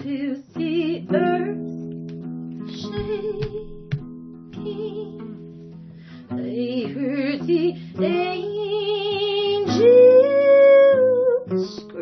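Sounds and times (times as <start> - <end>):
woman singing with vibrato: 0.0 - 1.7, 2.7 - 3.9, 4.6 - 5.4, 6.2 - 12.0
guitar accompaniment: 0.0 - 12.0.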